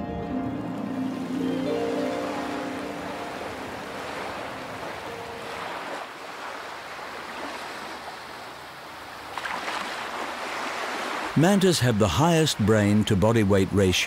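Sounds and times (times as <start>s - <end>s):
ocean waves washing: 0.0s - 14.0s.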